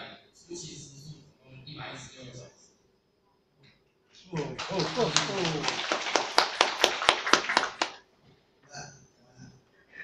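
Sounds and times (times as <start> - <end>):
audience applauding: 4.3 - 8.1
close sharp clapping: 4.3 - 8.1.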